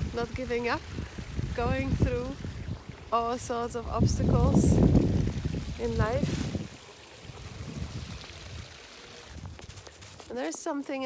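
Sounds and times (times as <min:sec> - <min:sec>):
brook water running: 0:00.0 - 0:11.0.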